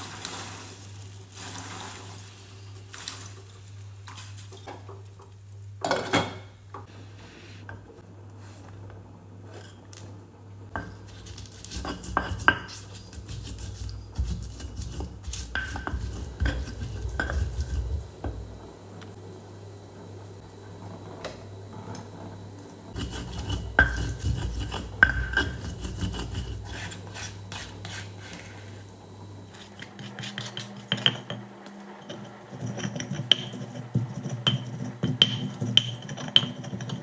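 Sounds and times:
pestle pounding chillies in mortar: 0:10.8 - 0:18.1, 0:23.0 - 0:27.3, 0:32.5 - 0:37.0
spatula scraping paste: 0:10.9 - 0:18.1, 0:22.9 - 0:28.8, 0:29.5 - 0:30.8.

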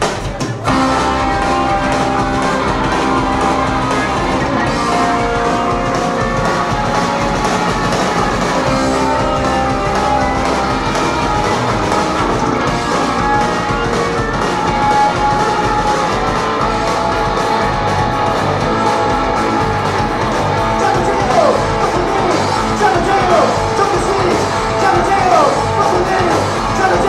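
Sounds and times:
punk rock band playing live: 0:00.0 - 0:27.0.

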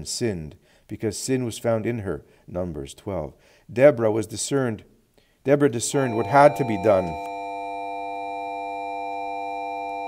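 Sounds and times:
sustained electronic chord: 0:05.9 - 0:10.0.

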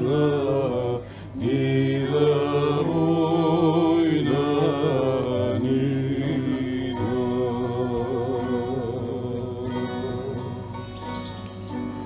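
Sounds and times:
low steady drone: 0:00.0 - 0:12.0.

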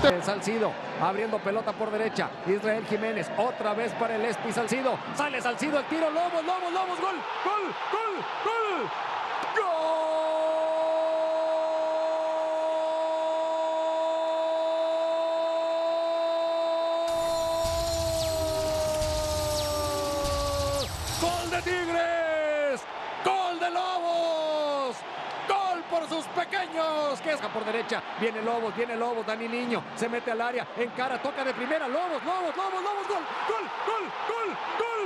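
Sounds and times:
stadium crowd noise: 0:00.0 - 0:35.0
commentator shouting goal: 0:01.9 - 0:18.0, 0:21.2 - 0:35.0.

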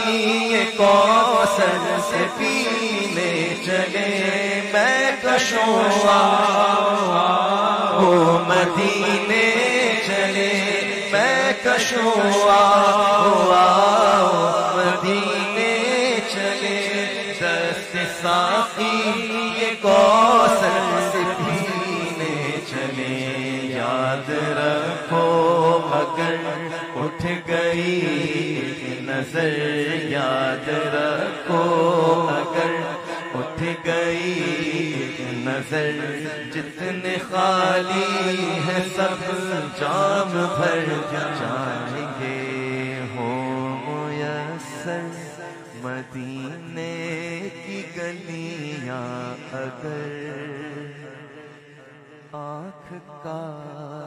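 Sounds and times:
man singing devotional song: 0:00.0 - 0:54.0.

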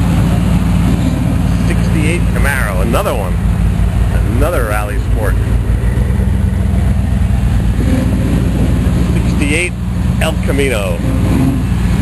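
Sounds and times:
car engine at low revs: 0:00.0 - 0:12.0.

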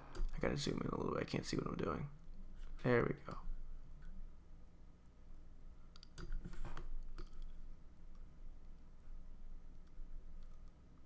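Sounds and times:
low steady hum: 0:00.0 - 0:11.0
computer mouse clicks: 0:05.9 - 0:08.9, 0:09.7 - 0:10.8.

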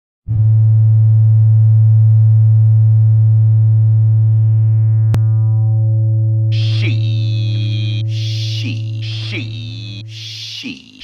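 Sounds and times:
low buzzy synthesizer note: 0:00.3 - 0:10.4.

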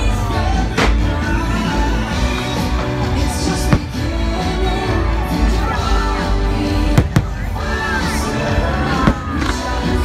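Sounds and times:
loud show music: 0:00.0 - 0:10.0.

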